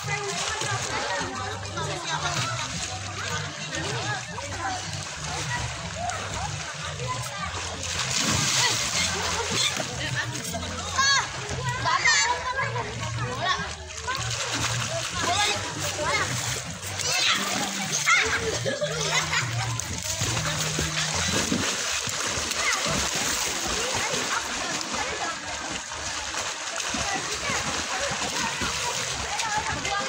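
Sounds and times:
water washing: 0.0s - 11.7s, 14.0s - 30.0s
children splashing in a pool: 0.0s - 30.0s
children shouting: 10.8s - 30.0s.

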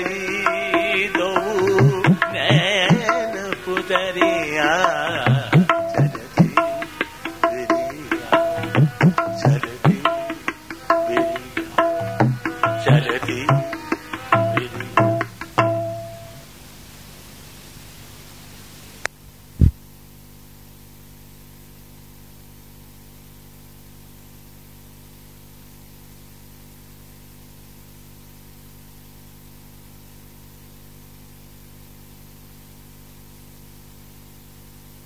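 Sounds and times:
background hiss and hum: 0.0s - 35.0s.

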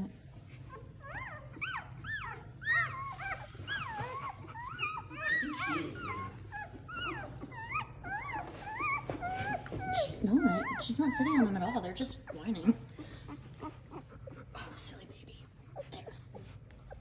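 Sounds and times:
puppies whining and squealing: 0.0s - 17.0s.

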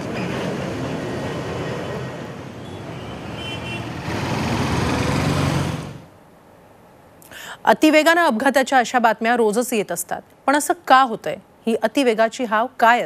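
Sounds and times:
vehicles passing on busy road: 0.0s - 6.2s.

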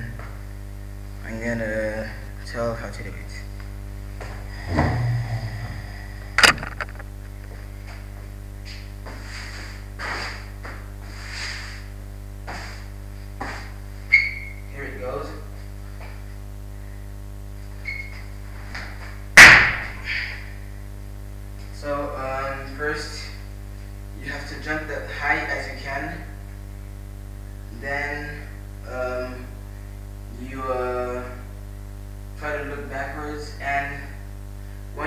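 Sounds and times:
steady electrical hum: 0.0s - 35.0s
sharp landing thuds: 6.3s - 7.4s
soft shuffling: 7.0s - 11.9s.

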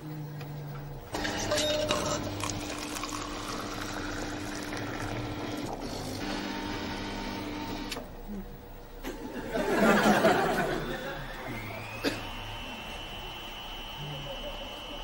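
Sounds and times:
vending machine motor hum: 0.0s - 15.0s
coffee pouring into cup: 1.2s - 6.6s.

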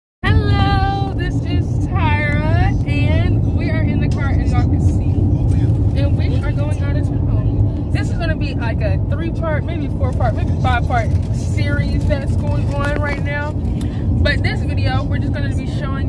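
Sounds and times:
car road and engine rumble: 0.2s - 16.0s.

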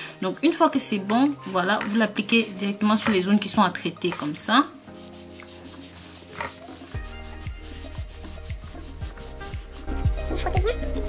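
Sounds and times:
cotton pad rubbing foamy skin: 4.1s - 11.0s
background music with bass beat: 5.2s - 11.0s.

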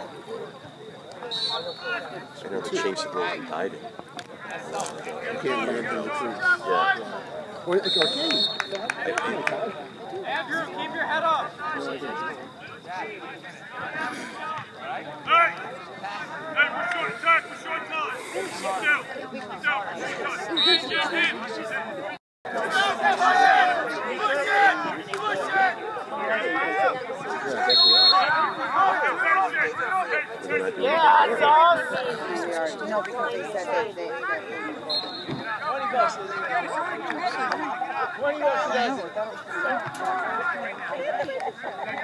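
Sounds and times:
people talking and calling out: 0.0s - 42.0s
referee whistle blast: 1.3s - 2.0s, 7.8s - 8.8s, 27.6s - 28.4s, 34.8s - 35.5s.

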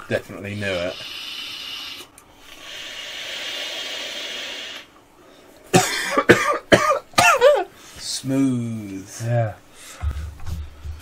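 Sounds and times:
hissing breath out: 0.8s - 5.5s
hissing vape inhale: 0.8s - 5.6s
person coughing: 5.7s - 7.7s.

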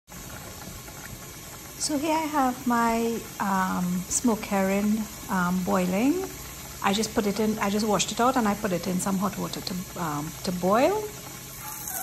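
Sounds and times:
water boiling in a pot: 0.1s - 12.0s.

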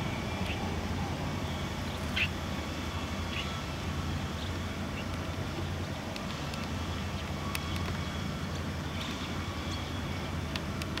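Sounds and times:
low hum and rumble: 0.0s - 11.0s.

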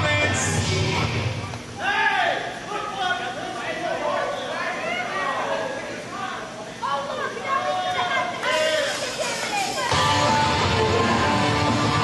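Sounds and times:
rock music: 9.9s - 12.0s.

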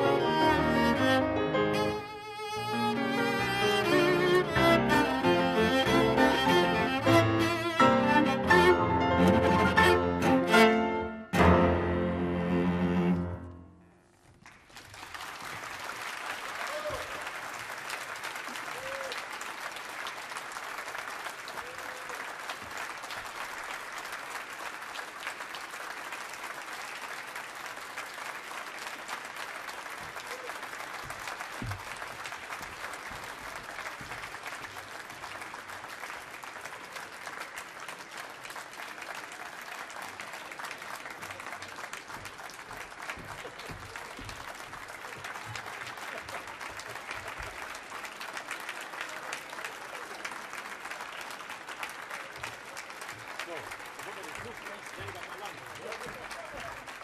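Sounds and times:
audience applauding: 0.0s - 11.5s, 14.1s - 57.0s.

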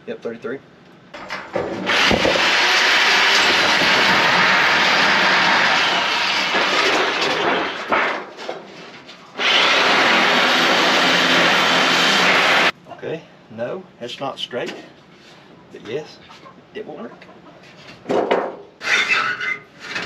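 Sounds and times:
power tool cutting metal: 1.6s - 8.0s, 9.3s - 12.7s.

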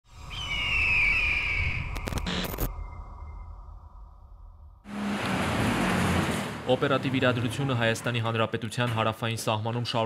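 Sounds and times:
low rumble: 1.7s - 4.9s.

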